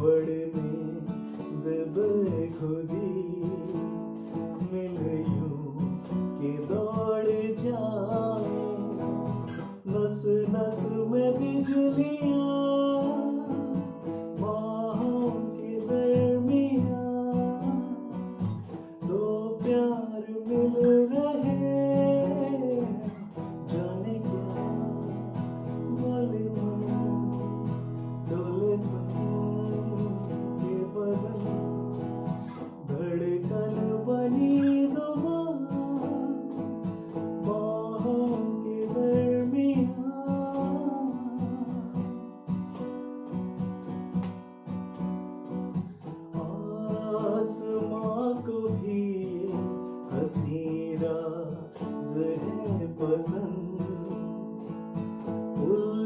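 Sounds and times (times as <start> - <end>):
man singing: 0.0 - 42.5, 46.2 - 56.0
acoustic guitar strumming chords: 0.0 - 56.0.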